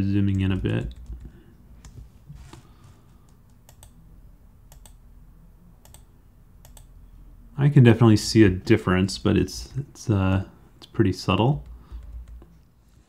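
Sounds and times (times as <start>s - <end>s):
computer mouse clicks: 0.4s - 2.0s, 3.2s - 4.0s, 4.7s - 5.0s, 5.8s - 6.9s, 11.6s - 12.6s.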